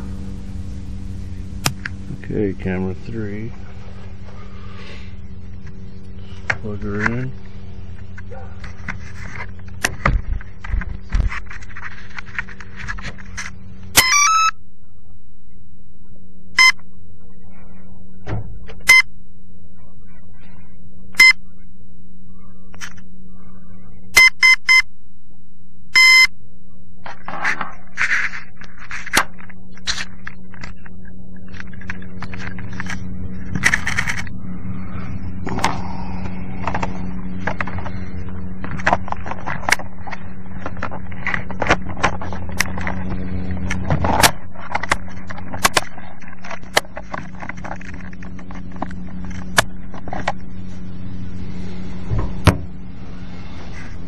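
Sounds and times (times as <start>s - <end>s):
helicopter motor and rotor hum: 0.0s - 14.3s, 27.0s - 54.0s
electronic beeps: 13.9s - 15.1s, 16.1s - 19.1s, 19.7s - 24.9s, 26.0s - 26.3s.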